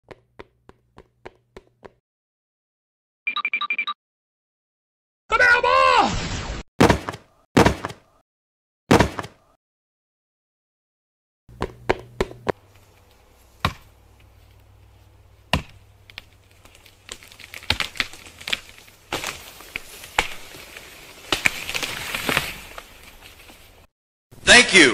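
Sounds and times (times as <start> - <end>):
axe chopping wood: 6.8 - 8.0, 8.9 - 9.4, 13.6 - 14.0, 15.5 - 16.3, 17.1 - 20.6, 21.2 - 22.4.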